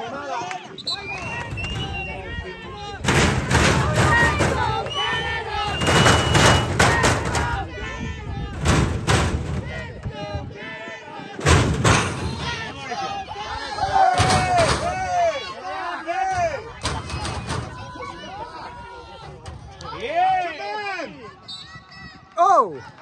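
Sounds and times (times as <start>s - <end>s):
voices of spectators and children: 0.0s - 23.0s
wind buffeting microphone: 1.5s - 15.0s.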